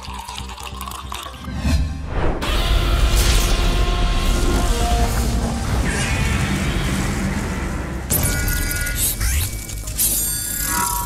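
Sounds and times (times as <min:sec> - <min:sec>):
music: 0:00.0 - 0:11.0
low rumbling: 0:01.6 - 0:08.1.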